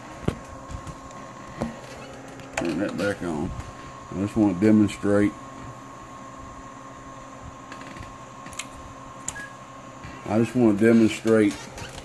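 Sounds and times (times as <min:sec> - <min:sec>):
electrical hum and hiss: 0:00.0 - 0:12.0
thin high whine: 0:00.0 - 0:12.0.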